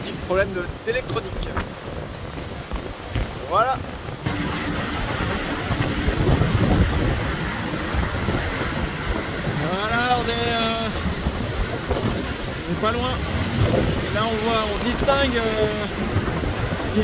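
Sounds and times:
water rushing past: 0.0 - 17.0
wind buffeting microphone: 0.0 - 17.0.

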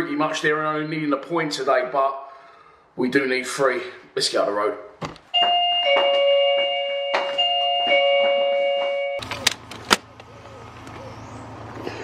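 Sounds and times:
doorbell ding-dong chime: 5.4 - 9.2.

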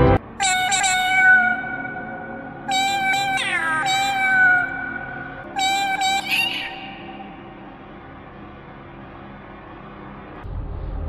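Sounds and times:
cat meowing: 0.4 - 6.8.

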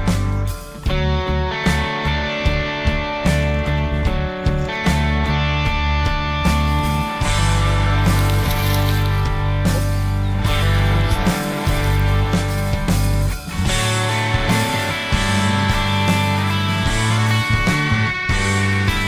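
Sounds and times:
rock music with guitar and bass: 0.0 - 19.0.

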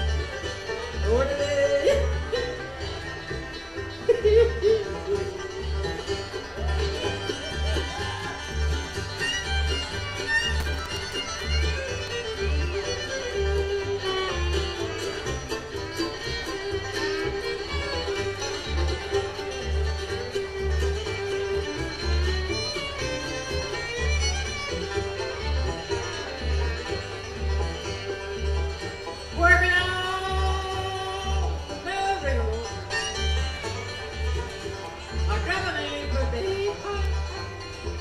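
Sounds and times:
fiddle: 0.0 - 38.0
mandolin: 0.0 - 38.0
upright bass notes: 0.0 - 38.0.

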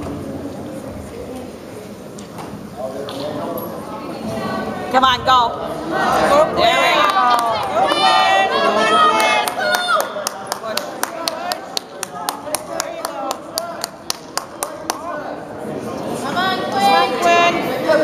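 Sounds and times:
rhythmic hand claps: 9.2 - 15.1.

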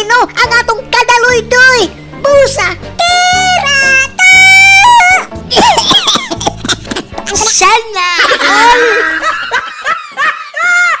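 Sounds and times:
high sped-up laughter: 5.5 - 11.0.

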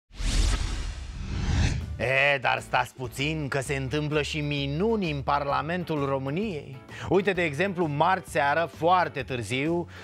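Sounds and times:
whoosh with deep rumble: 0.2 - 2.0.

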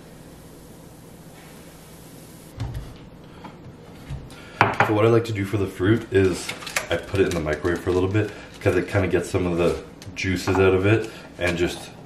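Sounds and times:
kitchen hiss and hum: 0.0 - 12.0
kitchen items clicking and clattering: 5.8 - 12.0.

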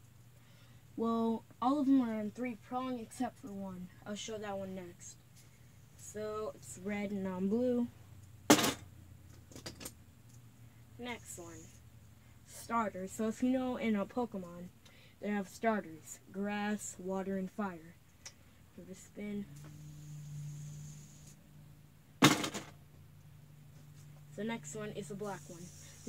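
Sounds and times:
low steady hum: 0.0 - 26.0
loud thump: 22.2 - 22.7.

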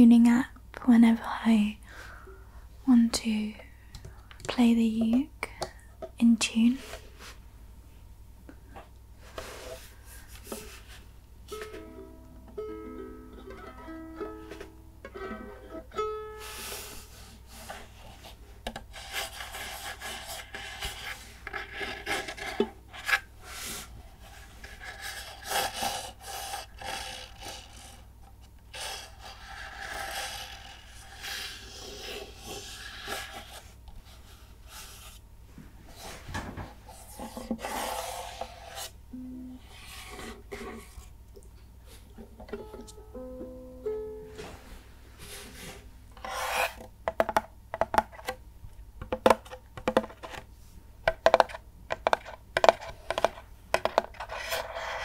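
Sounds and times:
ukulele strings plucked: 11.5 - 16.6, 39.2 - 39.6, 42.4 - 44.6.

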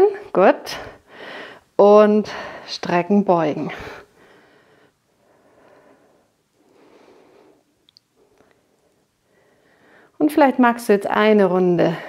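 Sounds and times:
person breathing softly: 0.7 - 2.7, 3.7 - 10.2.

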